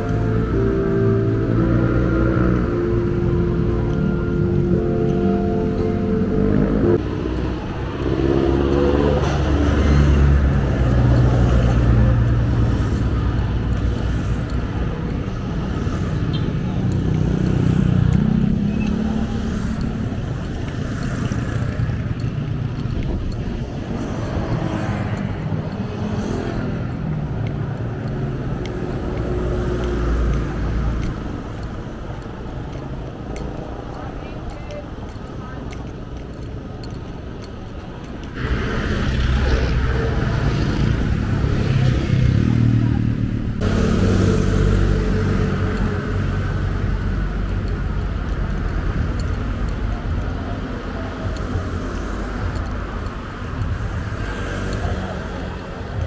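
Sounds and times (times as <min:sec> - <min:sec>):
highway traffic passing: 0:00.0 - 0:56.0.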